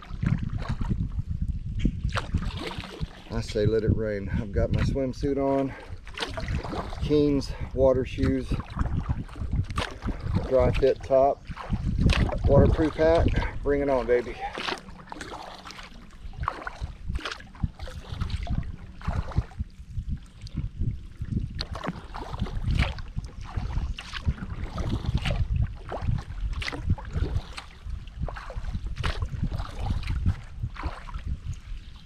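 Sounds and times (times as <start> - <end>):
kayak paddle splashing water: 0.0 - 1.1, 1.9 - 3.5, 4.7 - 32.0
wind rumbling on microphone: 0.0 - 32.0.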